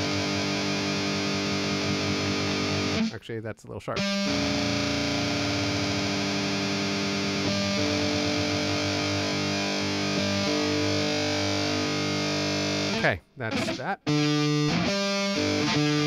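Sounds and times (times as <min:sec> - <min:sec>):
distorted electric guitar: 0:00.0 - 0:03.2, 0:03.9 - 0:16.0.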